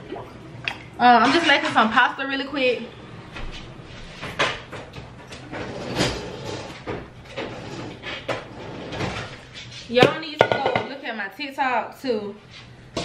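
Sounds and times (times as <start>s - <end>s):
knocks and clunks in kitchen: 6.7s - 11.1s.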